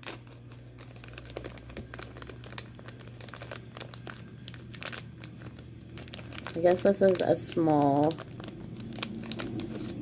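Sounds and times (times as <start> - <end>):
plastic crinkling and clicking: 0.0 - 10.0.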